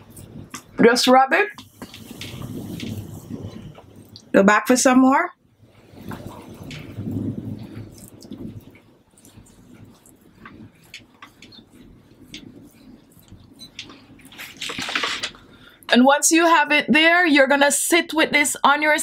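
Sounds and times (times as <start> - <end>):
fingers rubbing paste on skin: 7.7 - 14.4
wet paste squelching: 7.8 - 14.6.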